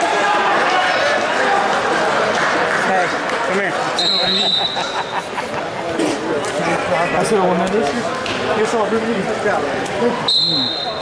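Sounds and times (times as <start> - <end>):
voices in a gymnasium: 0.0 - 11.0.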